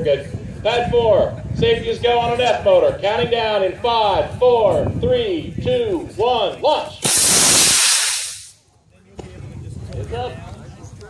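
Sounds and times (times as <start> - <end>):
model rocket motor rushing hiss: 7.0 - 8.5.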